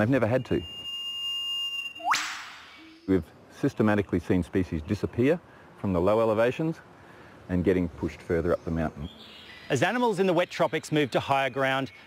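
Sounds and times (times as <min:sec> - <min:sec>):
bird whistling and whip-crack call: 0:01.7 - 0:03.1.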